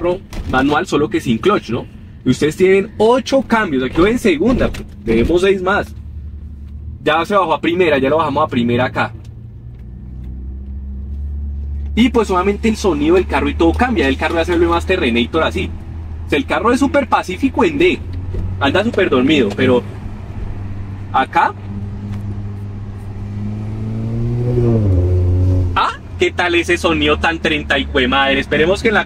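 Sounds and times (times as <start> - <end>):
car engine accelerating: 2.9 - 29.0.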